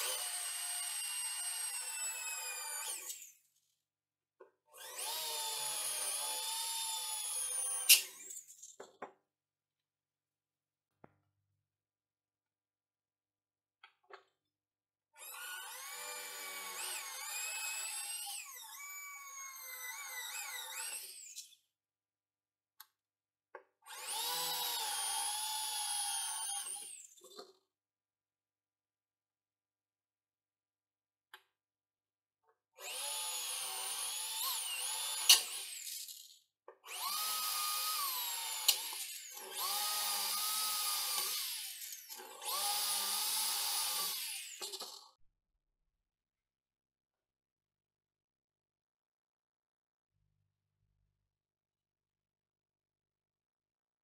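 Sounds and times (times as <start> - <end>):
electric drill boring through metal: 0.0 - 3.3, 4.8 - 8.5, 15.2 - 21.5, 23.9 - 27.2, 32.8 - 45.2.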